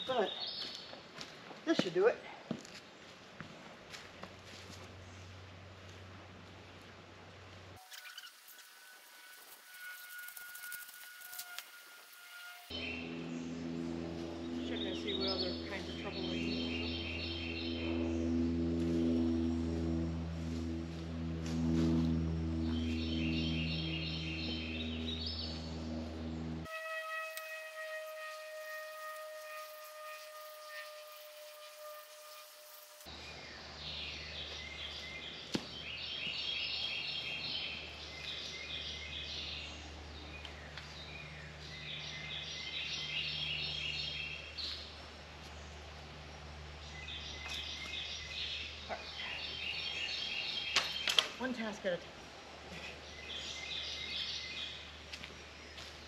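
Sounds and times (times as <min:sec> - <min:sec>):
music with long held chords: 0:12.7 - 0:26.7.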